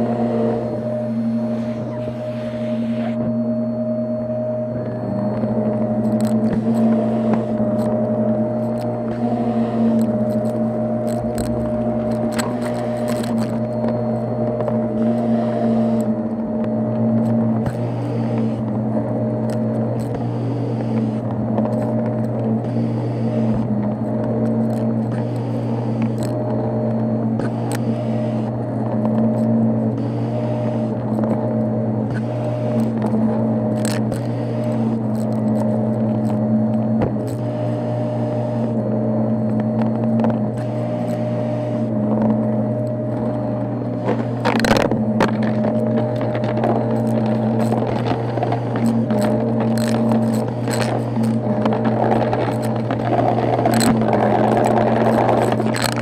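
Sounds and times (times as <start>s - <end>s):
vacuum cleaner motor hum and whine: 0.0s - 56.0s
debris crackling in vacuum nozzle: 5.3s - 56.0s.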